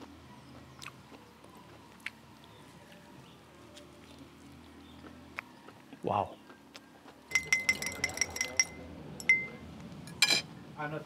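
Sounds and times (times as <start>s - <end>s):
stirrer clinking against glass: 7.3s - 10.4s.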